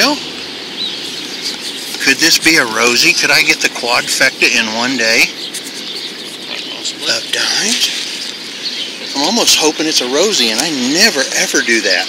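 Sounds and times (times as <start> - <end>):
bird chirp: 0.0 - 12.0
outdoor background noise: 0.0 - 12.0.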